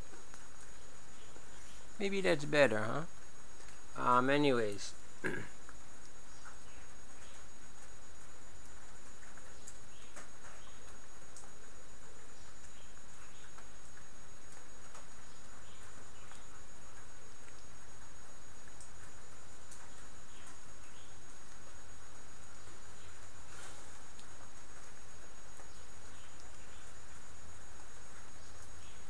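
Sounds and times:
faint high ticks and chirps: 0:00.0 - 0:29.0
steady hiss: 0:00.0 - 0:29.0.

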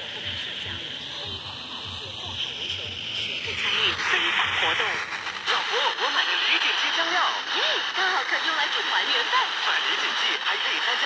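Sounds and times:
radio static hiss: 0:00.0 - 0:11.0
voice talking through radio speaker: 0:00.0 - 0:11.0.

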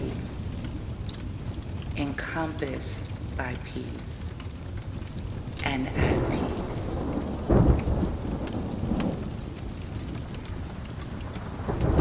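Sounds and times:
low rolling thunder: 0:00.0 - 0:12.0
steady rain: 0:00.0 - 0:12.0.

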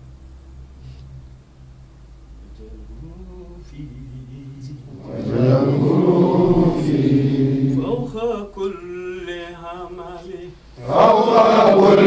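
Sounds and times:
men chanting in unison: 0:03.1 - 0:12.0.

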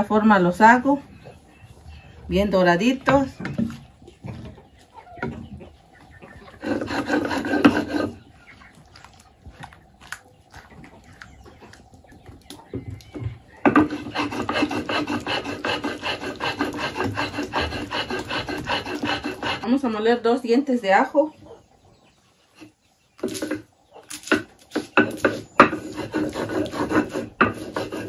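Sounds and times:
loud scraping: 0:06.6 - 0:08.2, 0:13.6 - 0:19.7, 0:24.8 - 0:28.0
stone grinding on stone: 0:06.6 - 0:08.2, 0:13.6 - 0:19.6, 0:24.2 - 0:28.0.

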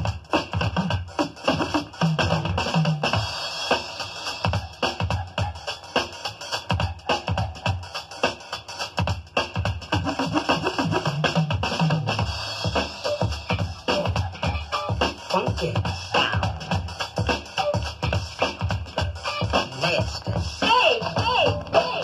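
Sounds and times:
electro hip-hop drum-machine beat: 0:00.0 - 0:22.0.

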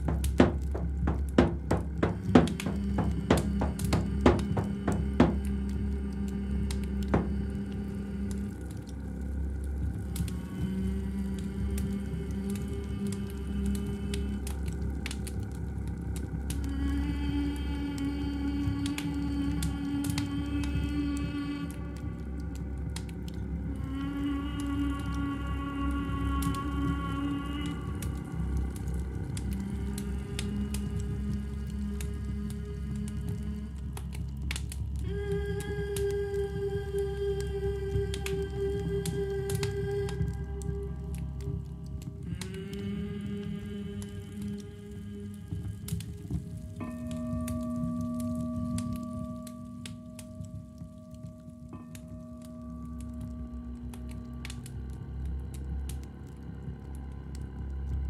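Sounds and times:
steady low drone: 0:00.0 - 0:58.0.

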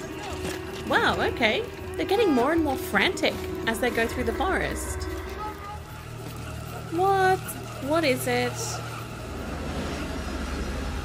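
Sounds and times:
low droning hum: 0:00.4 - 0:11.0.

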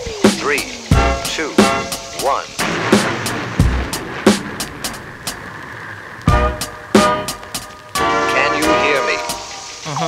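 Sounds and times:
drum and cymbal hits: 0:00.0 - 0:05.4, 0:06.3 - 0:09.8
person speaking countdown: 0:00.2 - 0:02.6
rocket launch rush of noise: 0:01.0 - 0:09.8.

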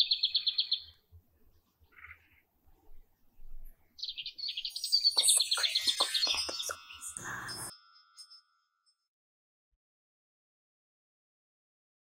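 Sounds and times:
high bird-like chirping trill: 0:04.0 - 0:09.0.

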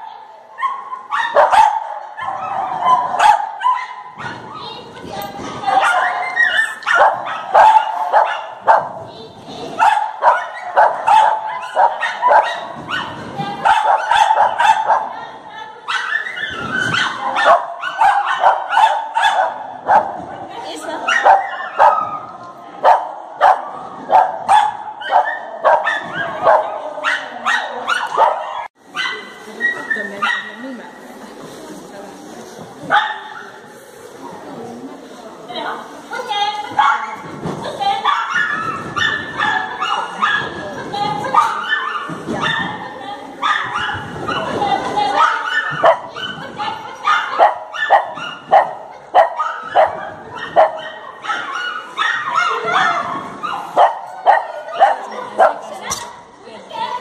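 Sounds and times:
large dog barking: 0:00.6 - 0:04.2, 0:05.7 - 0:09.0, 0:09.8 - 0:15.2, 0:16.9 - 0:20.2, 0:21.1 - 0:22.2, 0:22.8 - 0:29.2, 0:47.0 - 0:55.7.

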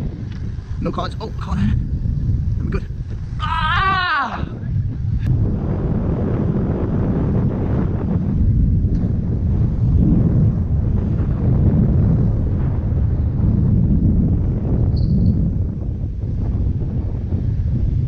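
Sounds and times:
tyres on asphalt: 0:00.0 - 0:18.0
wind buffeting microphone: 0:00.0 - 0:18.0.

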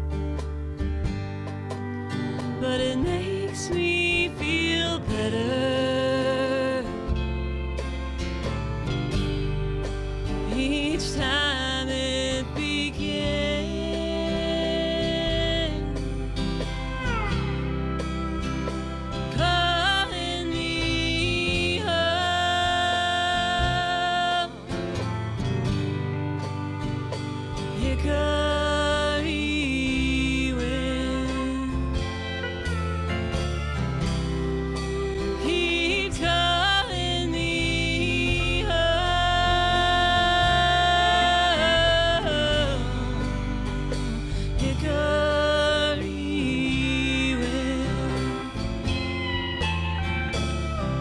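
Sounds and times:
drums: 0:00.0 - 0:51.0
electric bass: 0:00.0 - 0:51.0
folk-rock band playing: 0:00.0 - 0:51.0
steel guitar sliding: 0:00.0 - 0:51.0
strummed acoustic guitar: 0:00.0 - 0:51.0.

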